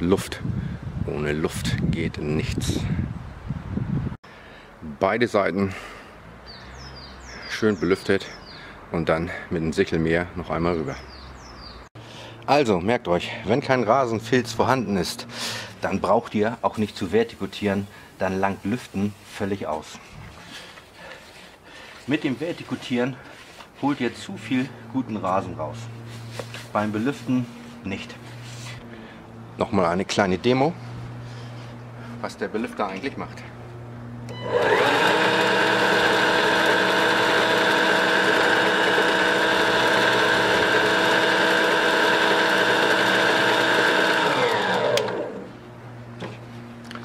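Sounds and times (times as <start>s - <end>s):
electric mower motor whine: 33.8s - 46.2s.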